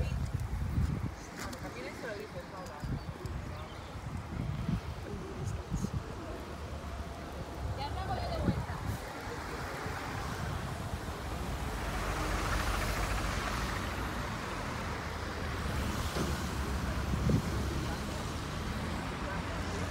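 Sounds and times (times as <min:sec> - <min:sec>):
low traffic rumble: 0:00.0 - 0:19.9
car passing: 0:06.2 - 0:19.9.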